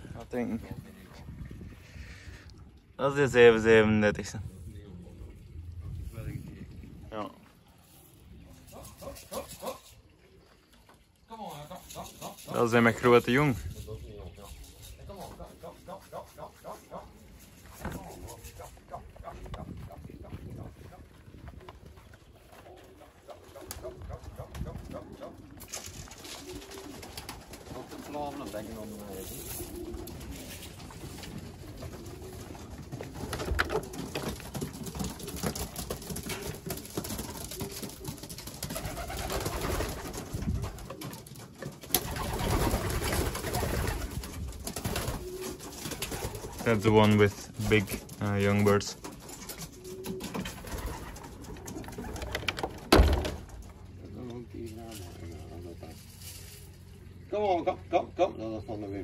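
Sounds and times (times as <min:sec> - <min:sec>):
rustling and knocks of movement: 0:05.9 - 0:57.3
pigeons cooing: 0:07.3 - 0:59.0.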